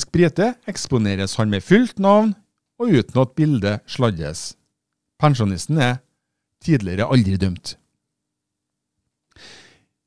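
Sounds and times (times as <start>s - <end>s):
man breathing in: 9.3s - 10.0s.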